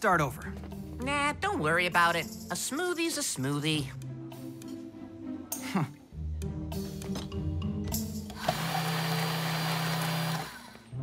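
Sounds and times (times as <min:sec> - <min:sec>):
electric blender whirring: 0:08.4 - 0:10.9.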